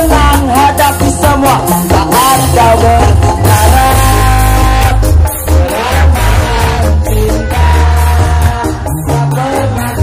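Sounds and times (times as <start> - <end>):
live band music through pa: 0.0 - 10.0.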